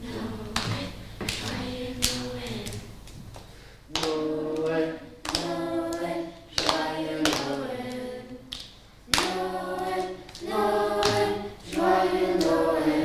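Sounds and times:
children's choir singing: 0:00.0 - 0:03.0, 0:03.9 - 0:13.0
hand claps: 0:00.6 - 0:12.7.

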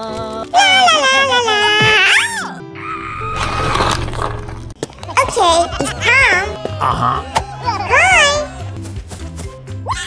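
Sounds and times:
background music: 0:00.0 - 0:10.0
noisy sound effect: 0:03.1 - 0:04.8.

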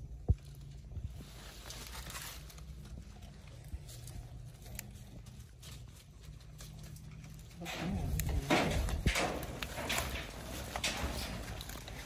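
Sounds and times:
low steady hum: 0:00.0 - 0:12.0
rustling of leaves and plants: 0:00.0 - 0:12.0.

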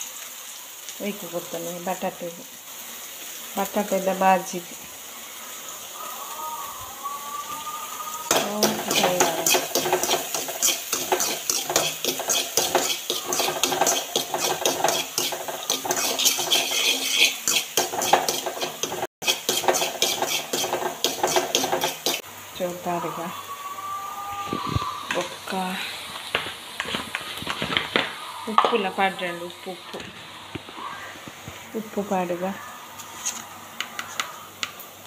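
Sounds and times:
frying sizzle: 0:00.0 - 0:35.0
spoon stirring and scraping in metal pan: 0:08.3 - 0:22.3.

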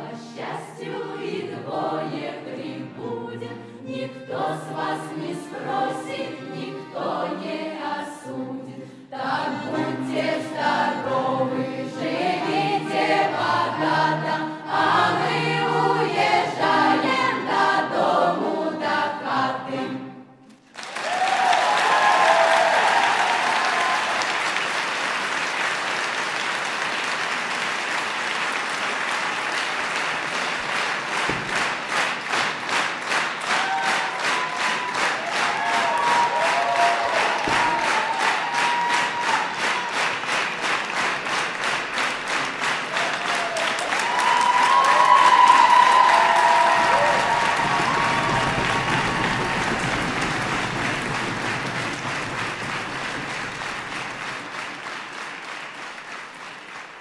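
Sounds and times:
folk choir singing: 0:00.0 - 0:20.4
rhythmic clapping: 0:20.5 - 0:57.0
audience applause: 0:20.6 - 0:57.0.

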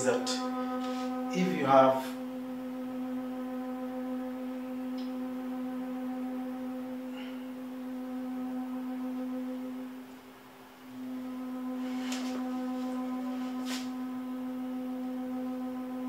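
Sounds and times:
low appliance hum: 0:00.0 - 0:16.0.

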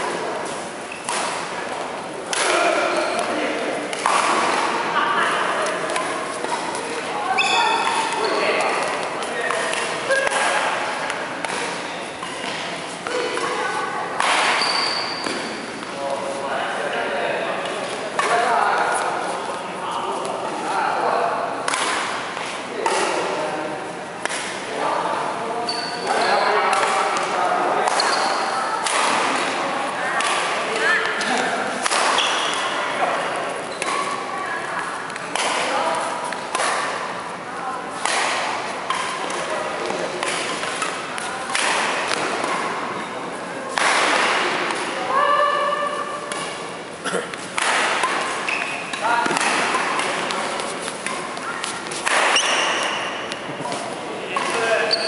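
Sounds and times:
players' voices: 0:00.0 - 0:55.0
rackets striking shuttlecock: 0:01.0 - 0:04.9, 0:05.6 - 0:13.5, 0:14.2 - 0:16.0, 0:21.7 - 0:23.3, 0:26.7 - 0:34.2, 0:34.8 - 0:37.2, 0:38.0 - 0:43.1, 0:43.7 - 0:45.0, 0:47.3 - 0:55.0
shoes thudding and squeaking: 0:05.9 - 0:10.2, 0:14.4 - 0:16.1, 0:25.7 - 0:26.6, 0:27.9 - 0:28.6, 0:32.0 - 0:32.8, 0:48.3 - 0:55.0.

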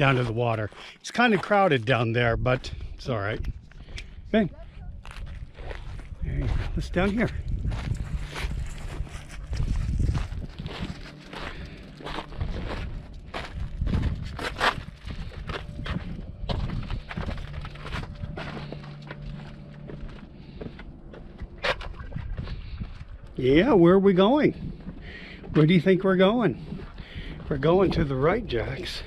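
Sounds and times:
footsteps crunching on sandstone: 0:00.0 - 0:29.0.

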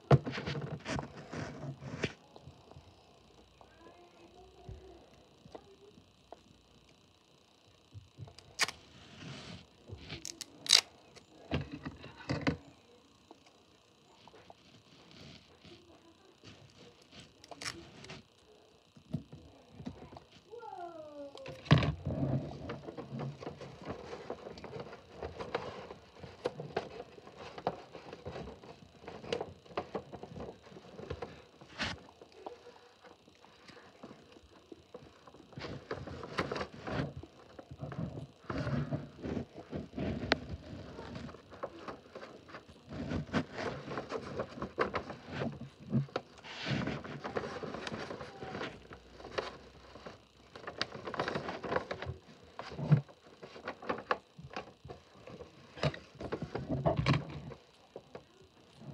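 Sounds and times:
paper rustling and crinkling: 0:35.5 - 0:57.6.

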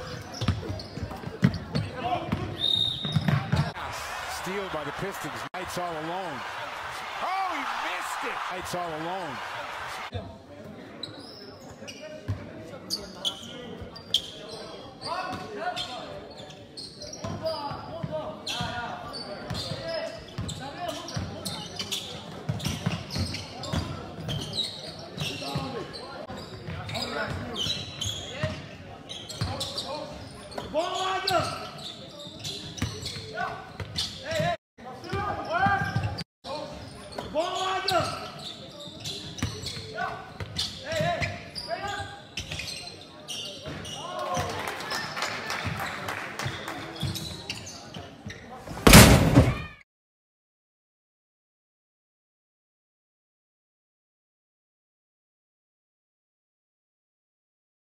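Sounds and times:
basketball bouncing on hall floor: 0:00.0 - 0:03.8
players and spectators shouting: 0:03.6 - 0:10.1.

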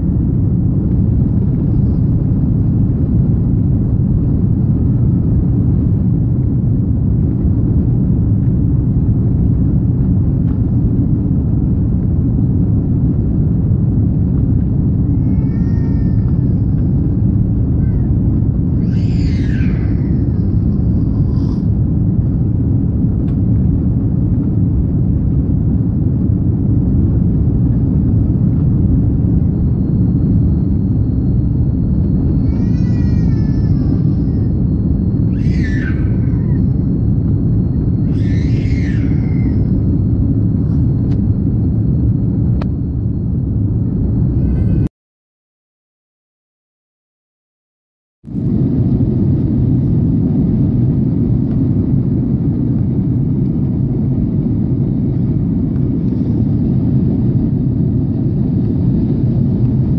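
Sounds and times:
airliner cabin rumble: 0:00.0 - 0:44.9, 0:48.2 - 0:59.9.

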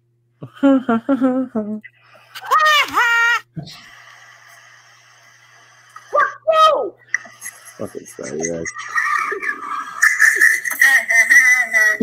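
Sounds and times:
high wavering laughter: 0:00.4 - 0:03.6, 0:07.2 - 0:11.0.

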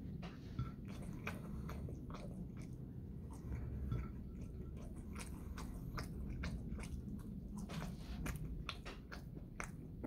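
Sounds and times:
person chewing: 0:00.5 - 0:10.0.

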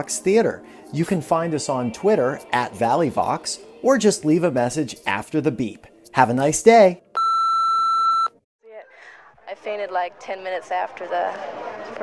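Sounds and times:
answering machine beep: 0:07.2 - 0:08.4.

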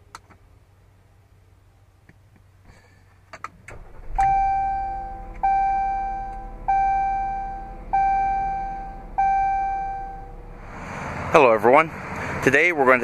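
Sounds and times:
steady low hum: 0:03.6 - 0:12.8
dashboard warning chime: 0:04.0 - 0:10.4.

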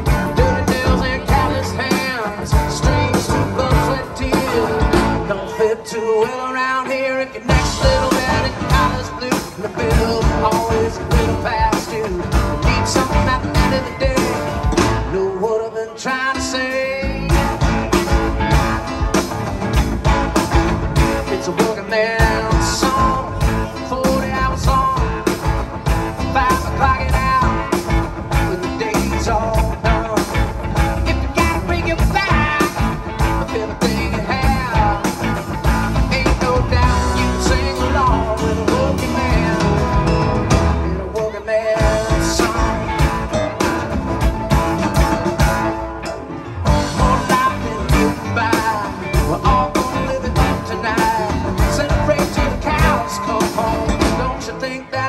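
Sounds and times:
drum kit: 0:00.0 - 0:05.7, 0:06.3 - 0:55.0
electric and acoustic guitars: 0:00.0 - 0:55.0
keyboard: 0:00.0 - 0:55.0.

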